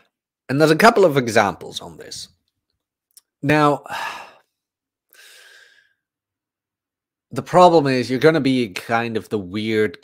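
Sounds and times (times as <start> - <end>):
man sighing into microphone: 3.8 - 4.5.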